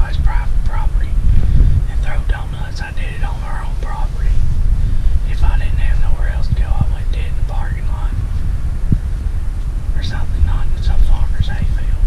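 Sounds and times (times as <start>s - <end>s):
man whispering: 0.0s - 8.4s, 9.9s - 12.0s
steady low rumble: 0.0s - 12.0s.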